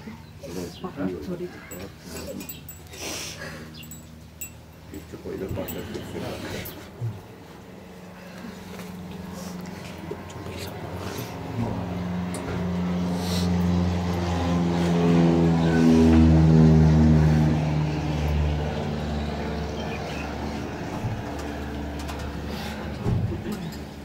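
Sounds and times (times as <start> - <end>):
vehicle engine running: 3.7 - 24.0.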